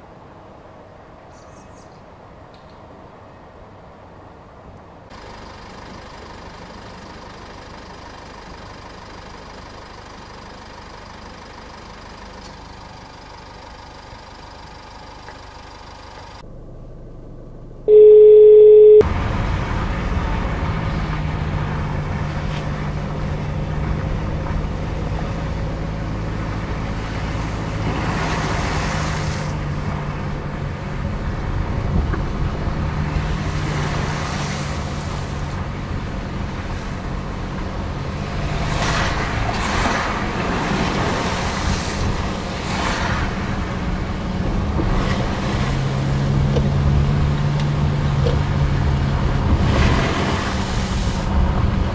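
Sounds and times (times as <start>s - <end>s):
car engine hum: 5.1s - 51.9s
loud steady beep: 17.9s - 19.1s
tyre and road noise: 19.0s - 51.9s.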